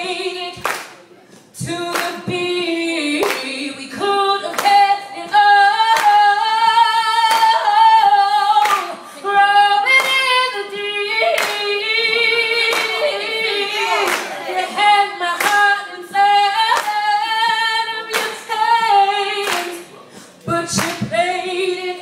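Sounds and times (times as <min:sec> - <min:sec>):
woman singing a cappella: 0:00.0 - 0:00.7, 0:01.6 - 0:22.0
audience clapping a beat: 0:00.6 - 0:02.5, 0:03.2 - 0:03.6, 0:04.4 - 0:06.3, 0:07.2 - 0:07.6, 0:08.6 - 0:09.0, 0:09.9 - 0:10.3, 0:11.3 - 0:11.8, 0:12.7 - 0:13.1, 0:14.0 - 0:14.7, 0:15.4 - 0:15.8, 0:16.7 - 0:17.1, 0:18.1 - 0:18.5, 0:19.4 - 0:21.2.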